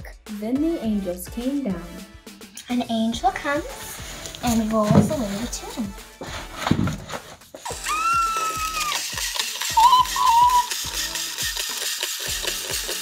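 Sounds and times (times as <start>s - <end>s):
background music with steady beat: 0.0s - 13.0s.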